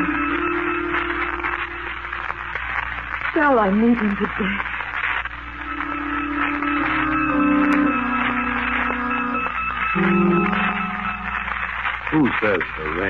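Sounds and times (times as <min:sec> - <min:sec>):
slow organ chords: 0:00.0 - 0:02.4, 0:05.4 - 0:13.0.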